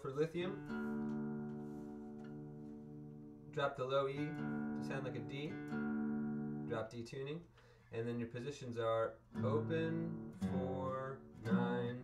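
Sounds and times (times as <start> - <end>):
acoustic guitar chord ringing: 0.4 - 6.8, 9.3 - 12.0.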